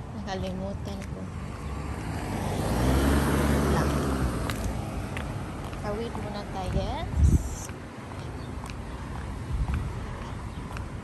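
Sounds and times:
car passing by: 0:01.4 - 0:05.9.

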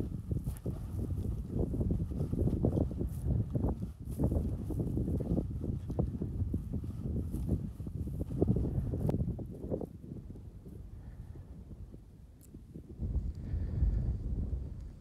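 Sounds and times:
footsteps on sandy ground: 0:00.0 - 0:09.9
wind on microphone: 0:00.0 - 0:15.0.

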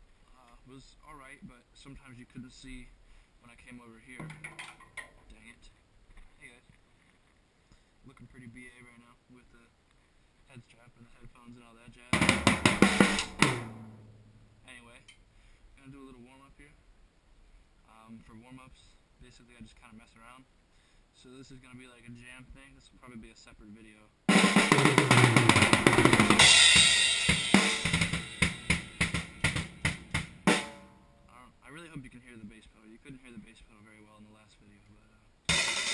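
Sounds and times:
acoustic drum fill: 0:12.1 - 0:14.4, 0:24.3 - 0:31.2, 0:35.5 - 0:35.9
low drum tone ringing: 0:12.1 - 0:15.1, 0:24.3 - 0:31.4, 0:35.5 - 0:35.9
crashing cymbals: 0:26.3 - 0:29.9, 0:35.5 - 0:35.9.

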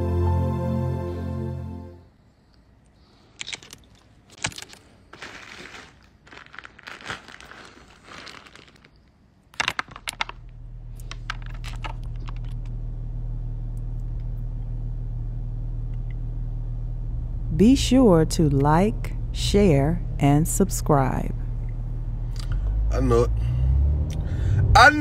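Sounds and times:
rustling handling noise: 0:03.2 - 0:12.7
low hum in car cabin: 0:09.4 - 0:25.0.

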